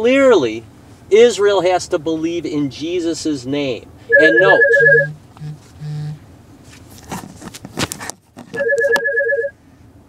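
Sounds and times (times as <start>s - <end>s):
electronic warbling ring tone: 4.1s - 6.2s, 8.6s - 9.5s.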